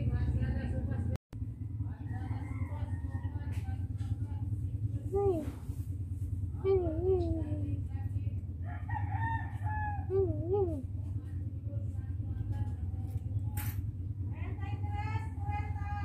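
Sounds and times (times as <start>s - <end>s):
steady low hum: 0.0s - 16.0s
rooster crowing: 1.6s - 3.6s, 8.6s - 10.2s.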